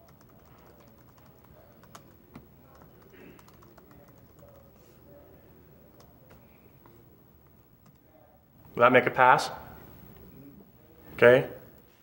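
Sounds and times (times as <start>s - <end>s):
typing on computer keyboard: 0.0s - 4.7s.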